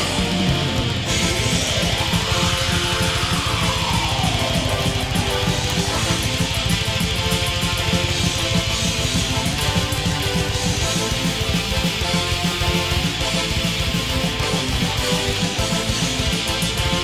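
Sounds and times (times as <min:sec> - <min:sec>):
heavy metal electric guitar: 0:00.0 - 0:17.0
quick low beats: 0:00.0 - 0:17.0.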